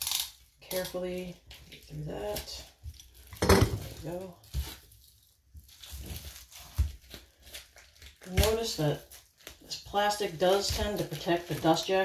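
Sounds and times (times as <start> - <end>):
plastic shrink-wrap crinkling: 0.0 - 12.0.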